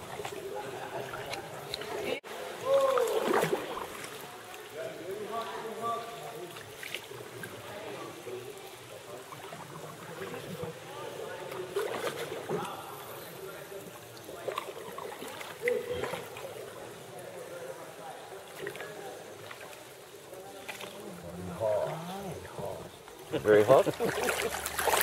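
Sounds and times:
paddle strokes splashing: 0.0 - 5.4, 6.0 - 7.7, 9.2 - 16.8, 18.3 - 21.3, 23.6 - 25.0
water lapping: 0.0 - 25.0.

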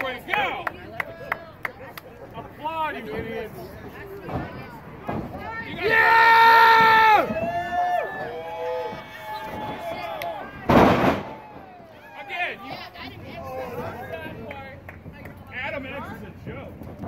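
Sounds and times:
voices calling out: 0.0 - 16.0
crowd shouting: 5.4 - 14.0.

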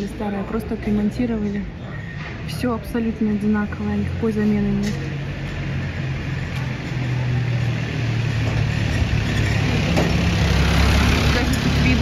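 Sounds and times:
vehicle engine running: 3.8 - 12.0.

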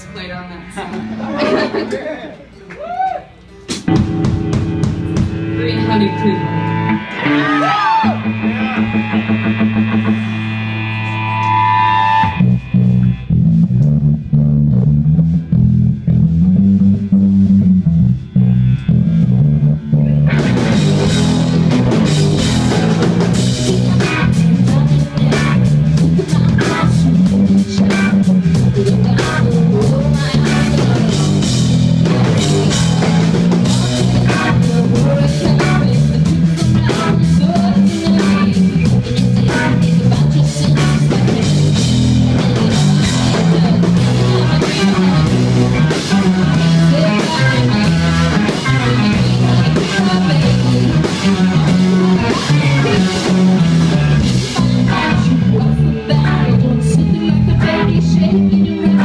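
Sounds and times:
electric guitar bending notes: 0.0 - 59.0
rock band playing: 0.0 - 59.0
low repeating guitar riff: 3.5 - 59.0.

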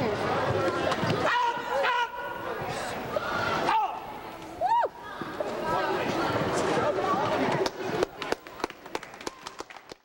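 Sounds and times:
scattered handclaps: 7.5 - 10.0.

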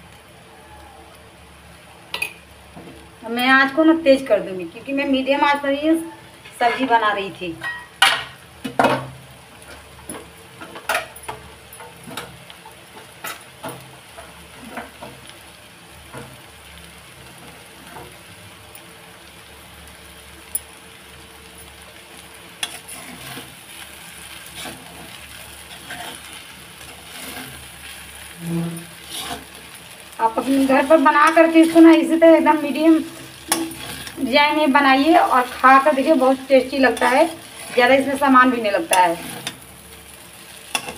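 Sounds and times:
noodles sizzling in a pan: 0.0 - 40.9.

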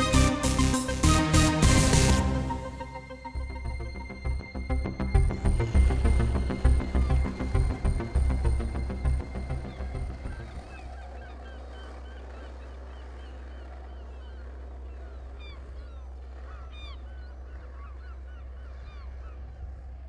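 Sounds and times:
music: 0.0 - 10.9
birds chirping: 0.0 - 20.0
low rumble: 2.6 - 11.2.

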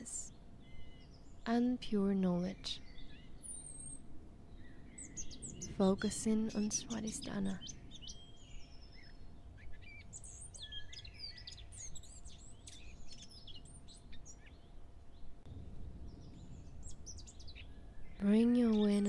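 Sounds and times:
faint low rumble: 0.0 - 19.0
small birds chirping: 0.0 - 19.0.

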